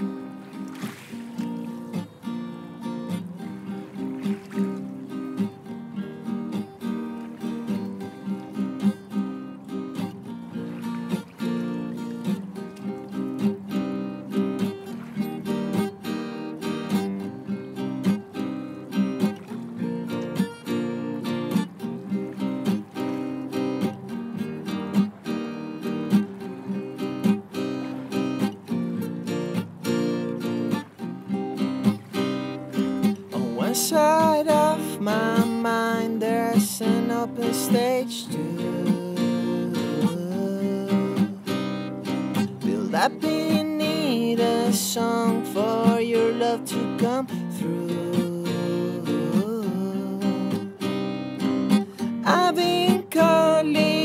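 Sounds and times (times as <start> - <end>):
strummed string instrument: 0.0 - 54.0.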